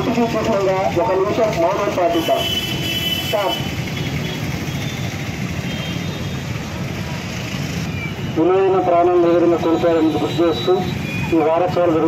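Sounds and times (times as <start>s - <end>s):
man talking: 0.0s - 2.5s, 8.4s - 12.0s
street traffic rumble: 0.0s - 12.0s.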